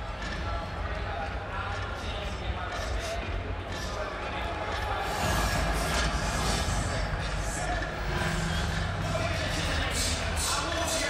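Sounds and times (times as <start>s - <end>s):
arena crowd hubbub: 0.0s - 11.0s
music over public address: 0.0s - 11.0s.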